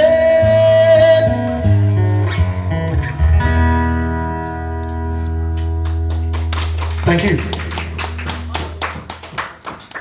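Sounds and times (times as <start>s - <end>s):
audience clapping: 5.2s - 10.0s.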